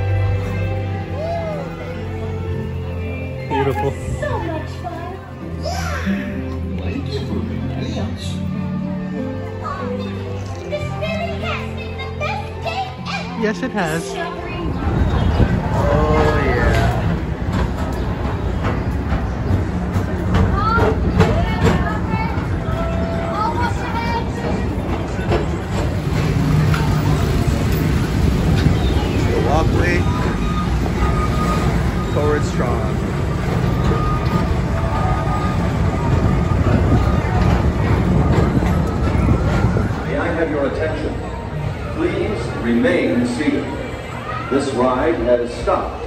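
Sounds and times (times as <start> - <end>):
ride car rumbling along track: 0.0 - 46.0
scattered voices: 0.1 - 46.0.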